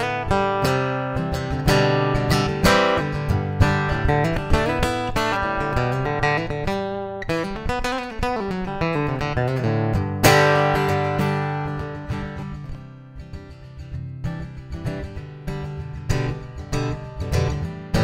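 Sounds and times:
acoustic guitar picked notes and chords: 0:00.0 - 0:18.0.

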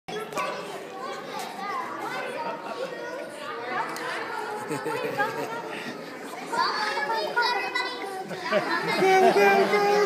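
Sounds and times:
young children chattering and calling: 0:00.1 - 0:10.0.

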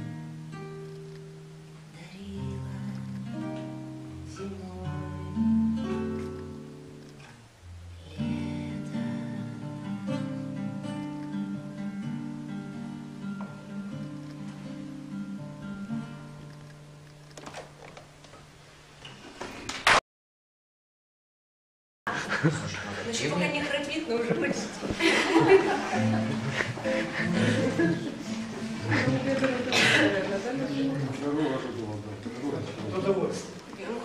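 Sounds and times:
classical guitar fingerpicking: 0:00.0 - 0:17.5, 0:24.9 - 0:34.0.

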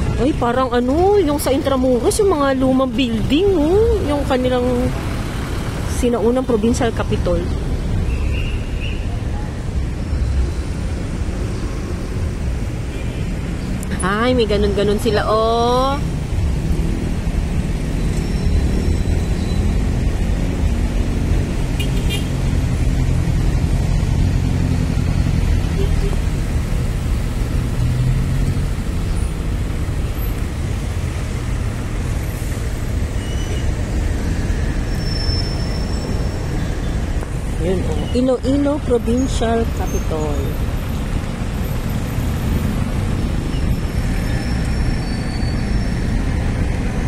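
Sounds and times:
road and traffic rumble: 0:00.0 - 0:47.0
vehicles passing: 0:00.0 - 0:47.0.

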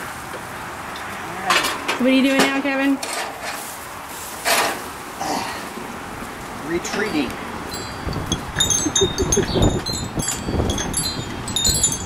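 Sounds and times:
wind chimes tinkling: 0:06.8 - 0:12.0
wind rumble on microphone: 0:07.3 - 0:12.0.

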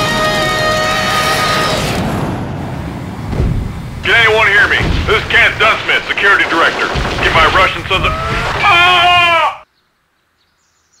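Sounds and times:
jet engine rumble: 0:02.0 - 0:08.7
man speaking over radio: 0:04.0 - 0:09.6.

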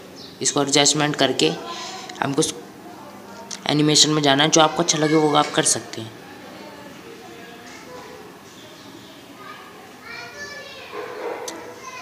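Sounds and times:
child's voice: 0:09.4 - 0:12.0.

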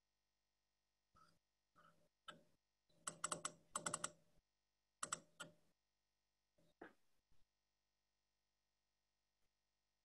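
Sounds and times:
faint keyboard typing: 0:03.0 - 0:04.2, 0:05.0 - 0:05.6.

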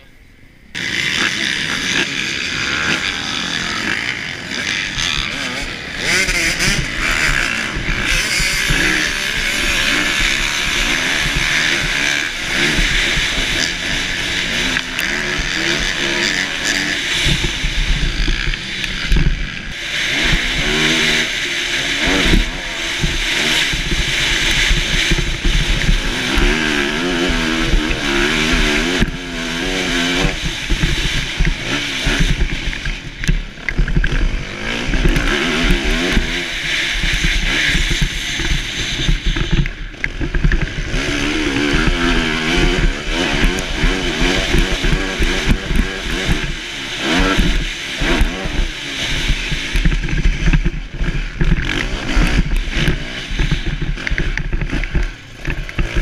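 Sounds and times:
motocross bike engine revving: 0:00.0 - 0:56.0.

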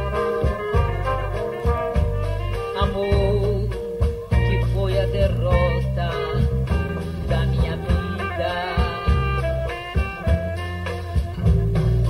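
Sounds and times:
live swing band music: 0:00.0 - 0:12.0.

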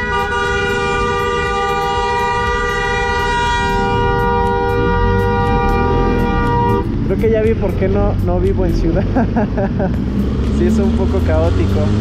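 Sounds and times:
vehicle horn blast: 0:00.0 - 0:07.0.

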